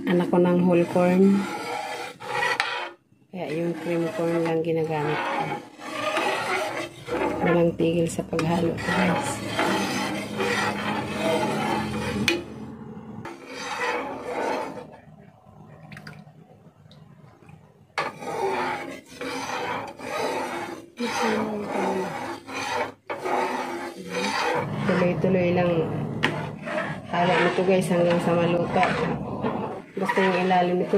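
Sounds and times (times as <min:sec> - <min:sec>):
metal spatula scraping a pan: 0:00.0 - 0:15.1, 0:18.0 - 0:30.9.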